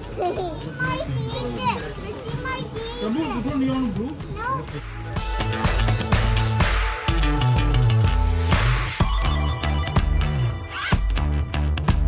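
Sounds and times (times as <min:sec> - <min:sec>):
children chattering and exclaiming: 0:00.0 - 0:03.6, 0:04.3 - 0:04.8.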